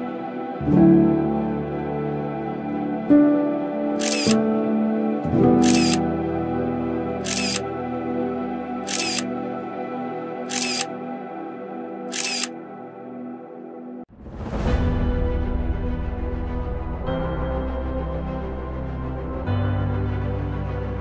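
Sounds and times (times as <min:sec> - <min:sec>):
background music: 0:00.0 - 0:21.0
camera shutter clicking: 0:04.0 - 0:04.4, 0:05.6 - 0:06.0, 0:07.2 - 0:07.6, 0:08.9 - 0:09.3, 0:10.5 - 0:10.9, 0:12.1 - 0:12.5.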